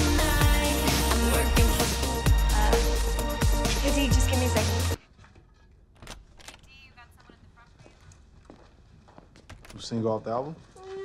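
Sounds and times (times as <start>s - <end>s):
faint footsteps on hard floor: 7.1s - 11.0s.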